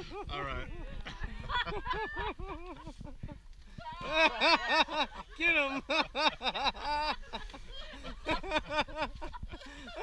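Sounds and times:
people laughing: 0.0 - 10.0.

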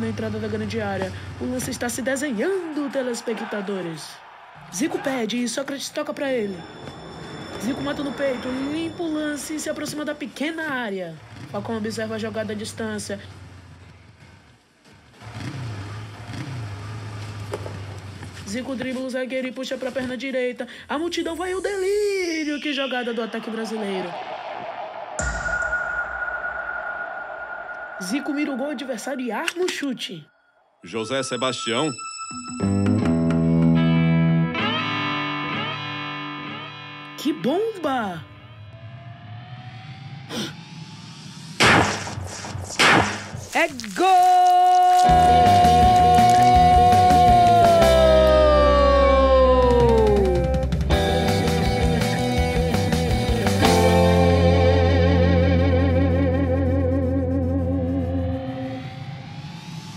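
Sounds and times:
motorcycle engine revving: 11.2 - 18.6
thin rising tone: 22.2 - 32.9
loud gunshots: 41.6 - 43.4.

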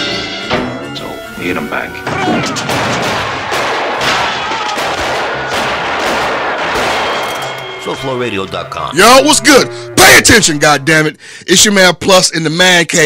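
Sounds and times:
rapid gunfire barrage: 2.3 - 7.2.

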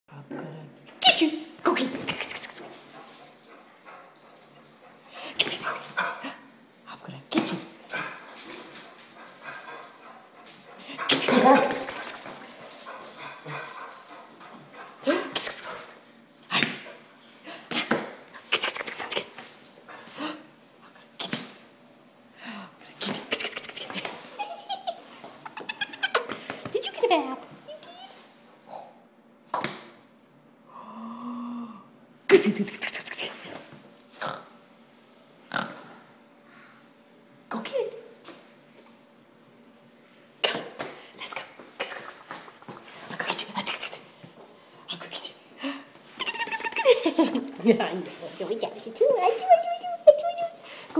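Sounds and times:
dog play growling: 2.0 - 6.4, 7.8 - 15.4.

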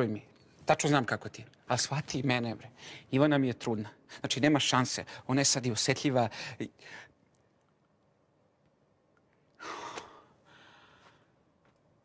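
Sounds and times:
breathy exhale: 9.6 - 11.3.

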